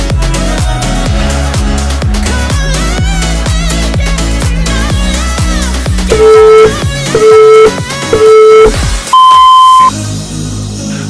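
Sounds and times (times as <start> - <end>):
background music: 0.0 - 11.0
timer beeps: 6.1 - 9.9.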